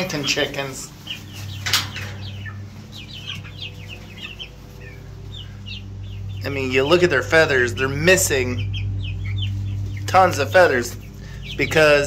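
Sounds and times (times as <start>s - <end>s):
chicks peeping and clucking: 0.0s - 12.0s
low steady hum: 0.0s - 12.0s.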